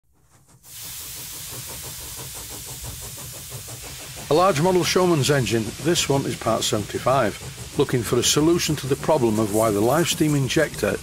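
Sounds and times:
steam hissing with fast pulsing: 0.1 - 11.0.

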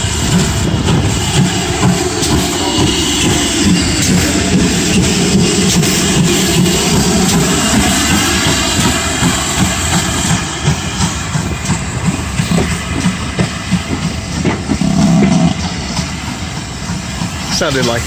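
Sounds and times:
steam hissing: 0.0 - 18.0
steam locomotive exhaust beats: 0.0 - 18.0
train wheels clicking and knocking: 0.0 - 18.0.

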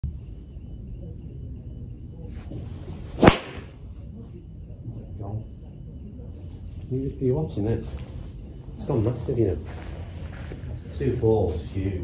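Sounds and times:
golf club swish: 3.1 - 3.7
golf ball struck crack: 3.2 - 3.8.

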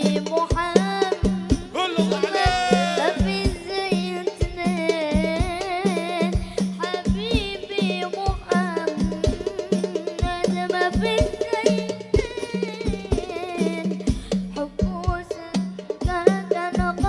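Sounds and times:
boy singing: 0.0 - 14.0
frame drums rhythm: 1.3 - 16.3.

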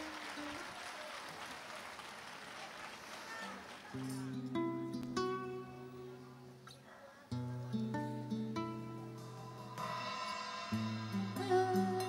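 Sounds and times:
soft flamenco guitar music: 0.0 - 0.8, 3.9 - 12.0.

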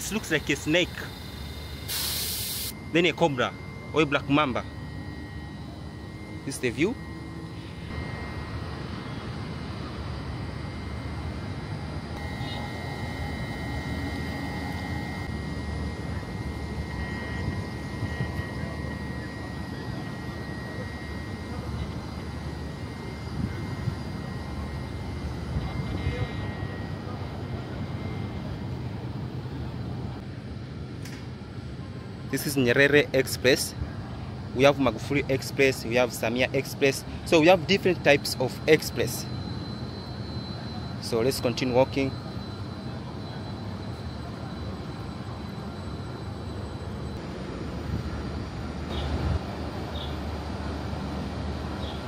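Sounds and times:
faint high whine: 0.0 - 52.0
train droning hum: 0.0 - 52.0.

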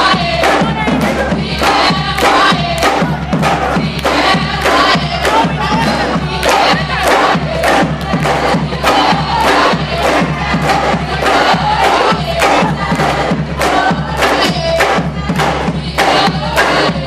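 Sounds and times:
marching drumline: 0.0 - 17.0
crowd cheering and shouting: 5.1 - 15.4.

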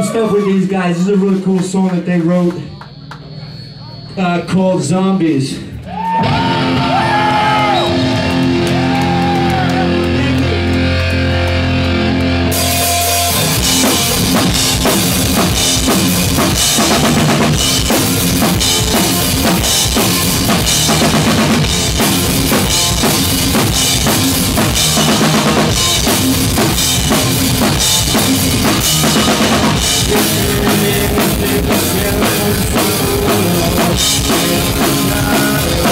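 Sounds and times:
rock band playing: 6.0 - 35.9
person singing: 29.8 - 35.9.

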